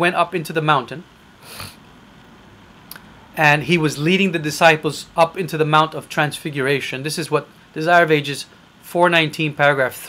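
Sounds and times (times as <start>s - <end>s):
breath drawn in: 1.4s - 1.8s
faint mouth click: 2.9s - 3.1s.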